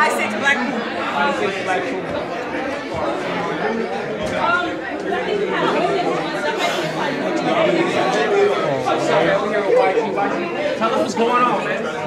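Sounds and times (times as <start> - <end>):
crowd chatter in echoing shop: 0.0 - 12.0.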